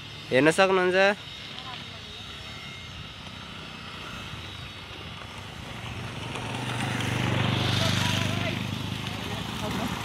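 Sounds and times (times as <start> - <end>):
motorcycle engine approaching: 3.3 - 10.0.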